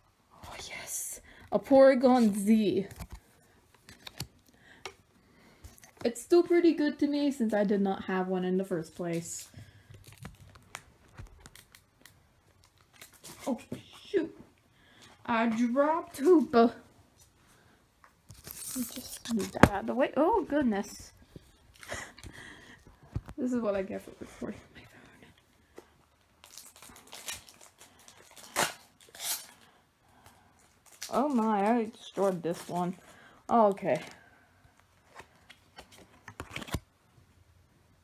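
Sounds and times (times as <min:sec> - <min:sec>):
foil wrapper crinkling: 0:09.8 - 0:13.5, 0:18.3 - 0:19.8, 0:26.4 - 0:29.7, 0:30.6 - 0:33.0
wrapper tearing: 0:10.0 - 0:13.5, 0:18.3 - 0:19.6, 0:26.4 - 0:29.7, 0:30.6 - 0:32.8
foil wrapper tearing: 0:18.3 - 0:19.6, 0:26.4 - 0:29.6.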